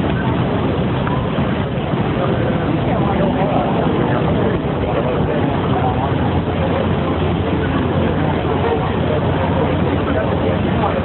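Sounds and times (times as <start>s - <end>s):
idling vehicles rumbling: 0.0s - 11.0s
murmur of voices: 0.0s - 11.0s.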